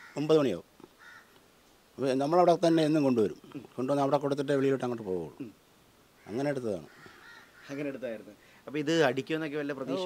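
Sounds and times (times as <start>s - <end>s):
faint bird call: 1.0s - 1.4s, 6.2s - 7.9s.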